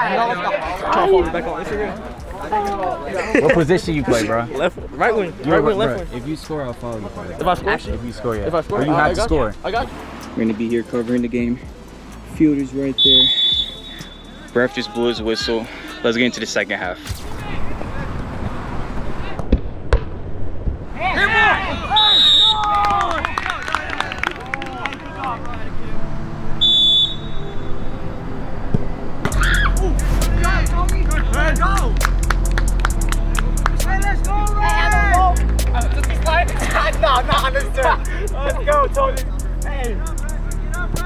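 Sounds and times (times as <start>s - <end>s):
heavy bass line: 29.3s - 41.0s
music with sung vocal: 29.3s - 41.0s.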